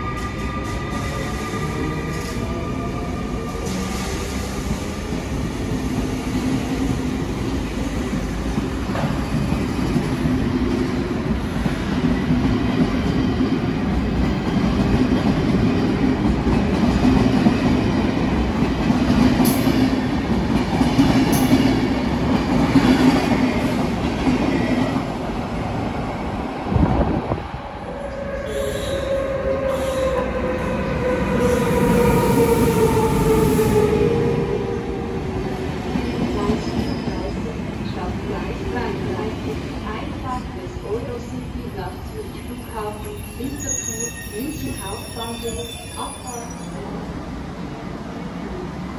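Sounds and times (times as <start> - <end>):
train rumbling: 0.0 - 48.9.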